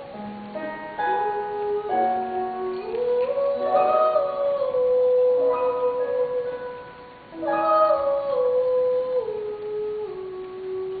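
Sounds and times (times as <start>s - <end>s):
soft accompaniment: 0.0s - 11.0s
woman singing: 0.6s - 11.0s.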